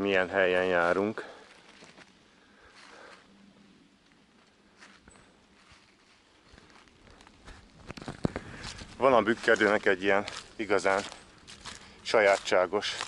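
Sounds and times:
footsteps crunching dry leaves: 0:00.5 - 0:03.3, 0:04.4 - 0:13.0.

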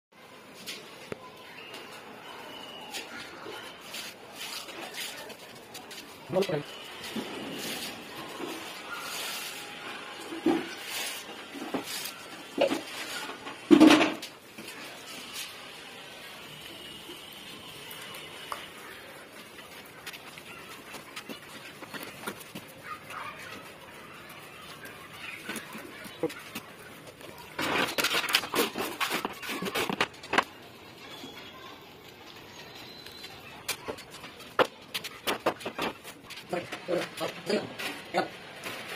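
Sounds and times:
steel trowels scraping: 0:06.7 - 0:13.7.

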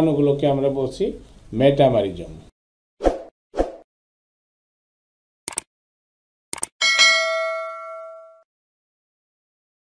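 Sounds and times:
notification bell ding: 0:06.8 - 0:08.5.

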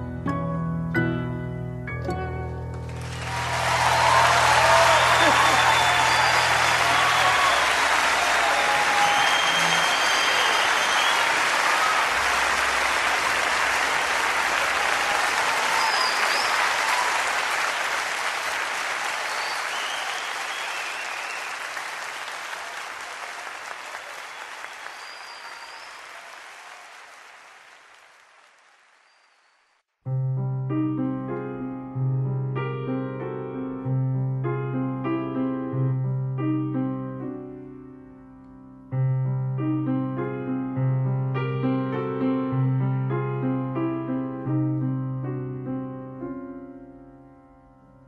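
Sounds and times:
audience applause: 0:02.8 - 0:29.8
whistles: 0:04.9 - 0:07.9, 0:08.5 - 0:12.1, 0:15.6 - 0:17.0, 0:19.2 - 0:21.8, 0:24.0 - 0:26.3, 0:29.0 - 0:29.8.

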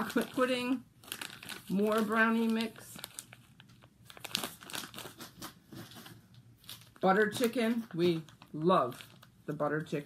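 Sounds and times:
food packets crinkling: 0:00.0 - 0:10.0.

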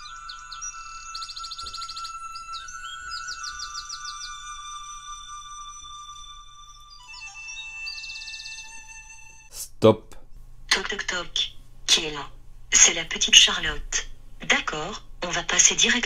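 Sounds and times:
birdsong chirps and trills: 0:00.0 - 0:09.5
gentle alarm tune: 0:00.0 - 0:09.5.

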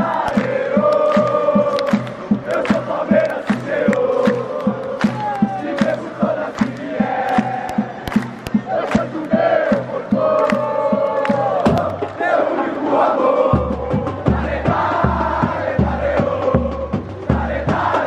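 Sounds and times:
drum section beating rhythm: 0:00.0 - 0:18.0
stadium crowd chanting: 0:00.0 - 0:18.0.

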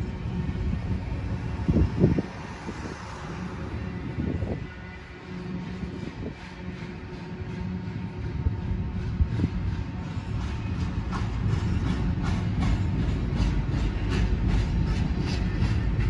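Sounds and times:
freight train rolling past: 0:00.0 - 0:16.0.

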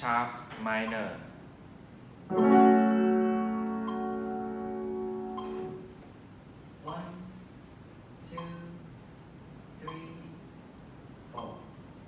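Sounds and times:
piano chords: 0:02.3 - 0:06.0.

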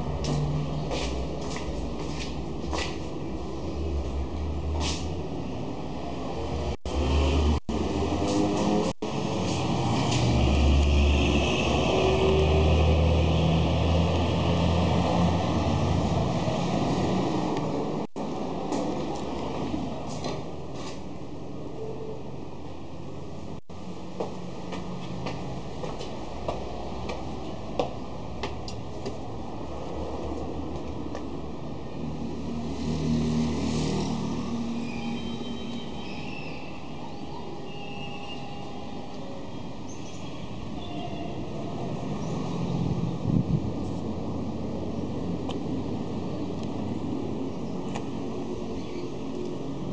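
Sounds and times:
vehicle engine passing by: 0:00.0 - 0:21.0, 0:28.7 - 0:36.0
outdoor traffic noise: 0:00.0 - 0:49.9.

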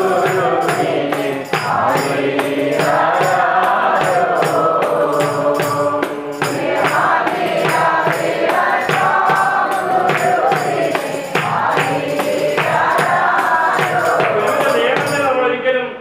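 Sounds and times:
group of voices chanting: 0:00.0 - 0:15.1
steady percussion beat: 0:00.0 - 0:15.4.

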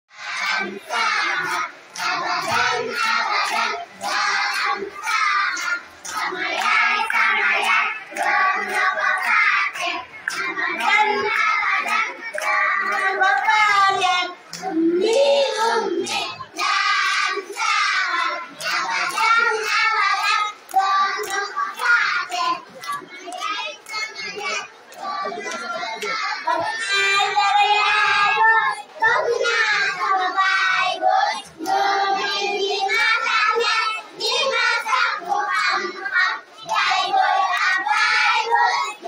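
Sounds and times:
children singing: 0:00.1 - 0:39.0
hands clapping: 0:00.2 - 0:39.0.

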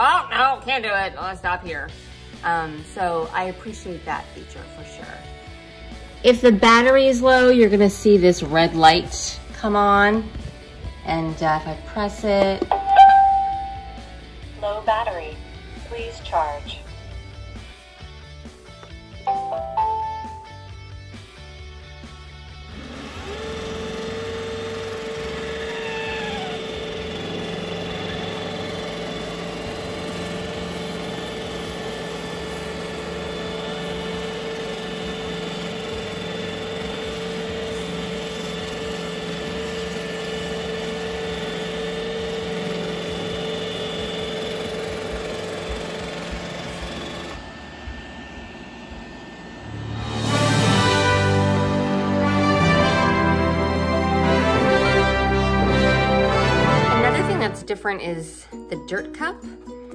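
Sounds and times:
music: 0:00.0 - 0:47.4, 0:49.7 - 0:59.9
robot vacuum motor whir: 0:22.7 - 0:51.5.

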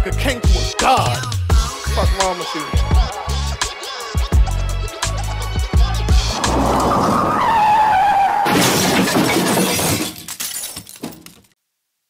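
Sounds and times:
falling tone: 0:06.1 - 0:08.7
shattering glass crash: 0:08.4 - 0:11.5.

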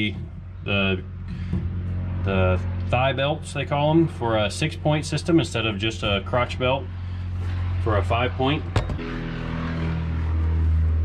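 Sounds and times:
low mechanical motor hum: 0:00.0 - 0:11.0.

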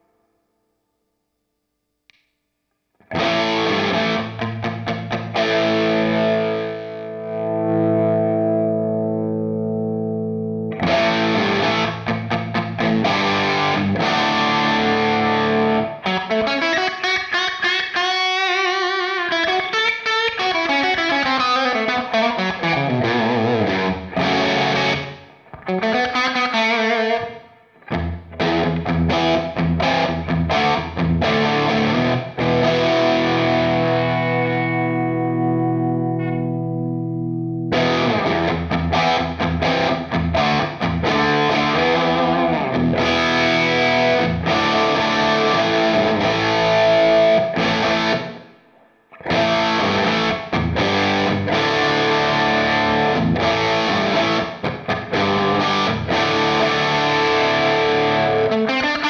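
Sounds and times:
overdriven electric guitar: 0:03.0 - 0:59.0.

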